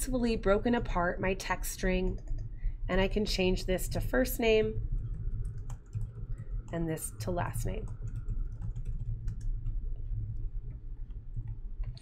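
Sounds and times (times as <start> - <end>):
low hum: 0.0 - 12.0
keyboard typing: 2.0 - 2.5, 4.8 - 12.0.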